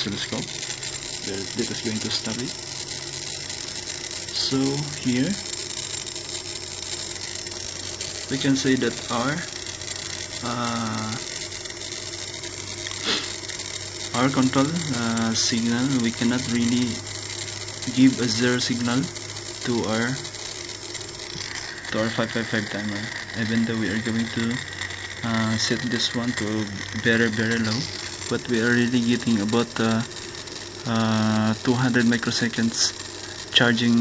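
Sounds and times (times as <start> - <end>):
small motor humming: 0.0 - 34.0.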